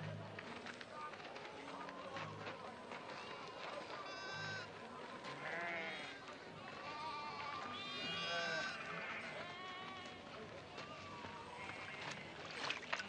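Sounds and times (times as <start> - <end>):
sheep bleating: 3.2 - 10.2.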